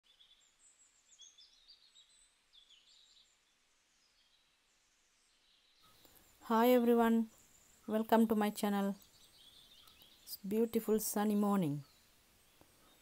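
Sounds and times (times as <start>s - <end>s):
faint high bird chirps: 0.0s - 13.0s.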